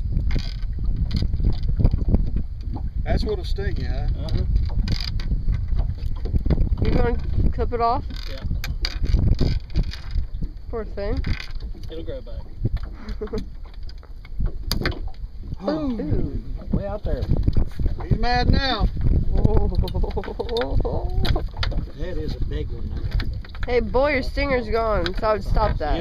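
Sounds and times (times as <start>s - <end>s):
wind buffeting microphone: 0.0s - 26.0s
people laughing and exclaiming: 15.6s - 16.3s, 19.5s - 21.2s.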